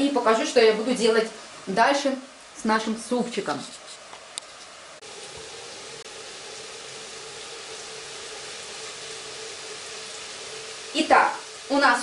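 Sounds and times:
stovetop hiss: 0.0s - 12.0s.

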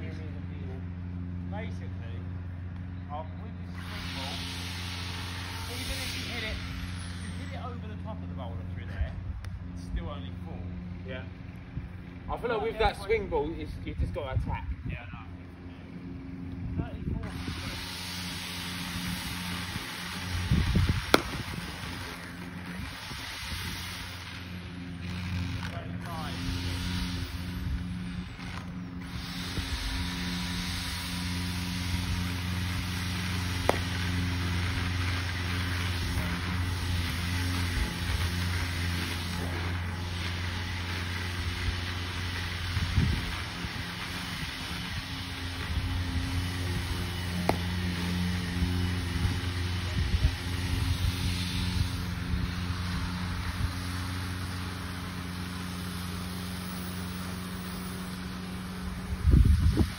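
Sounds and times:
engine drone: 0.0s - 59.9s.

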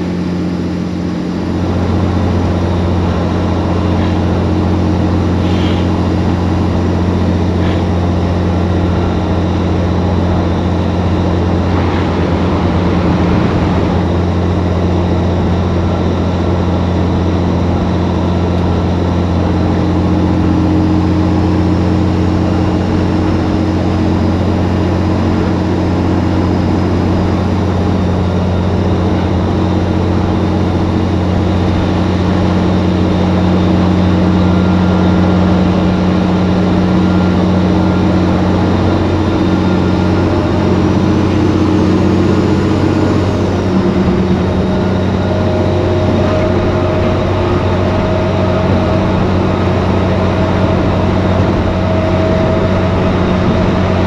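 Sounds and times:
truck diesel engine droning: 0.0s - 54.0s
tyre and wind noise: 1.6s - 54.0s.

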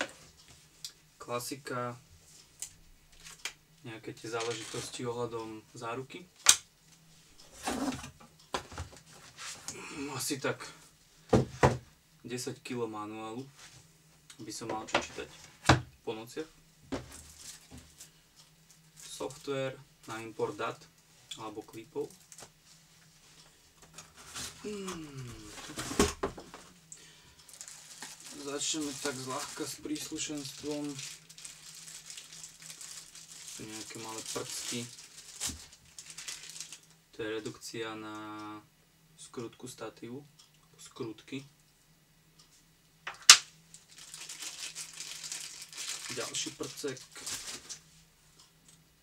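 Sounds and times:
packaging rustling and crinkling: 7.3s - 9.6s, 17.0s - 18.1s, 23.9s - 26.8s, 27.4s - 37.0s, 43.7s - 47.9s.

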